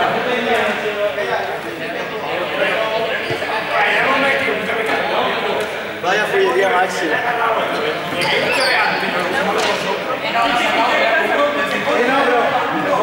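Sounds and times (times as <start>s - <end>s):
young people talking and calling: 0.0s - 13.0s.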